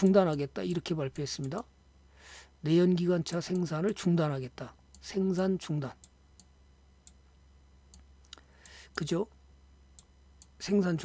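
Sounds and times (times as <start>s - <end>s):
steady low hum: 0.0s - 11.0s
short breath: 2.1s - 2.6s, 8.4s - 9.0s.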